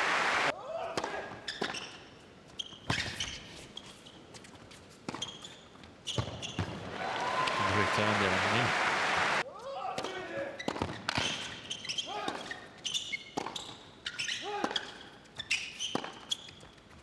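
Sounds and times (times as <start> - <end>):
crowd noise: 0.0 - 0.5, 6.8 - 9.4
shoes squeaking on court: 1.4 - 6.8, 10.0 - 17.0
ball bouncing on court: 6.1 - 6.9.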